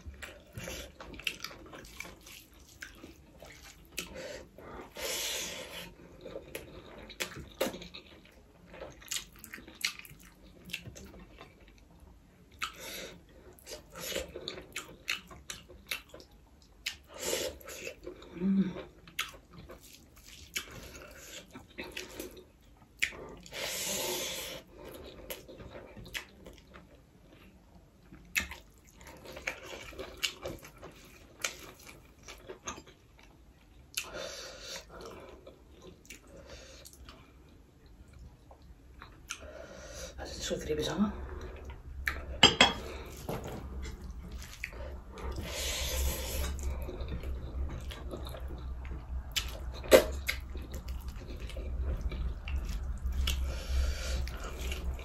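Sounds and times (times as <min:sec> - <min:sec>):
wet eating and chewing: 0:00.0 - 0:55.0.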